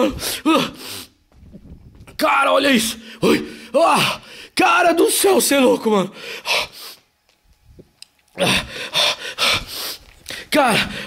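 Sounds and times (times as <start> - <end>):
man gasping: 8.3 - 11.0.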